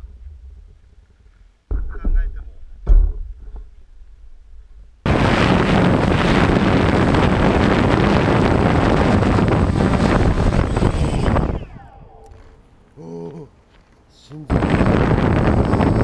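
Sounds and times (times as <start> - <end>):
drone propellers buzzing: 5.1 - 13.0.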